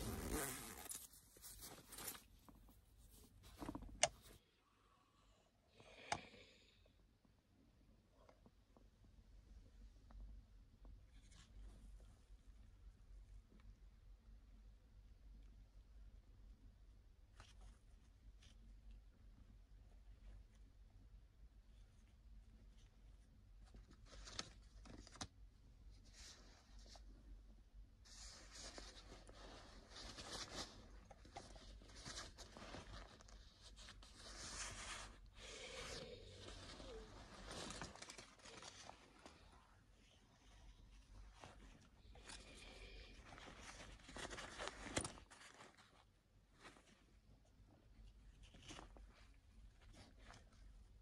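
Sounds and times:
handbag zipper being pulled: 0.0 - 1.1
bag rustling: 0.0 - 2.4
faint fabric rustles: 0.0 - 4.6, 8.6 - 13.7, 21.6 - 51.0.

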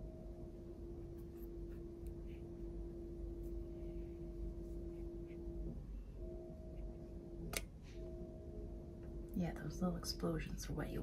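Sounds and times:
faint steady hum-like tone: 0.0 - 11.0.

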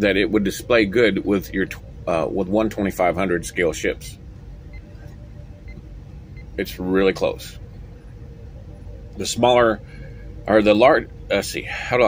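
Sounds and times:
faint hum: 0.0 - 12.0
low rumble: 0.0 - 12.0.

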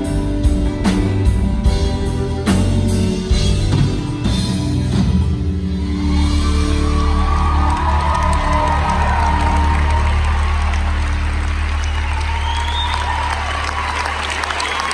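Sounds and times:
audience cheering and whooping: 5.7 - 14.9
applause: 6.7 - 14.9.

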